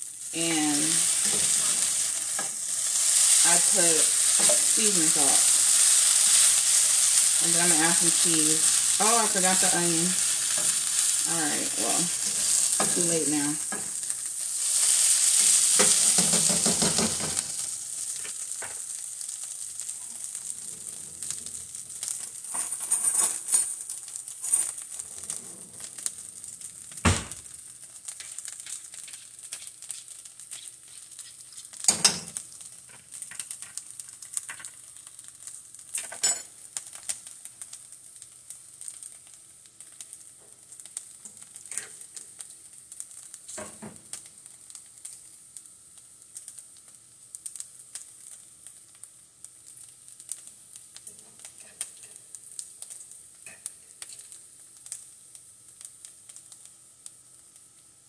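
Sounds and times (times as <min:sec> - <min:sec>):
hash browns and bacon sizzling: 0:00.0 - 0:58.0
utensils clinking against pans: 0:22.5 - 0:23.8.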